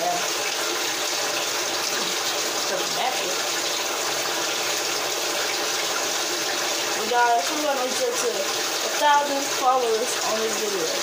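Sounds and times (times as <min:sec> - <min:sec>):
water running: 0:00.0 - 0:11.0.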